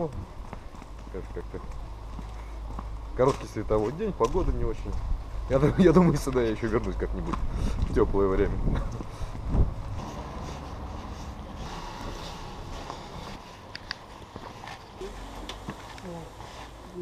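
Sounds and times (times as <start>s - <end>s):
footsteps: 0.0s - 17.0s
low street ambience: 0.0s - 17.0s.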